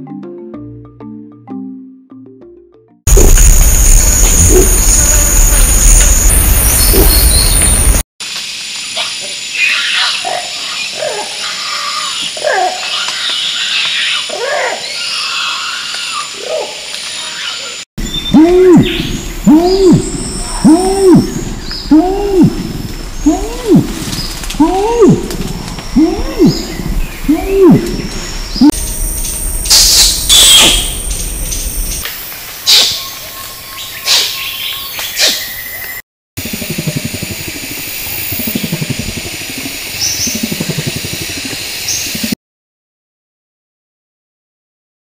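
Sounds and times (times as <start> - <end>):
orangutan long call deep pulses: 3.1 - 5.8, 18.2 - 28.7
young orangutan distress screams: 9.6 - 16.8.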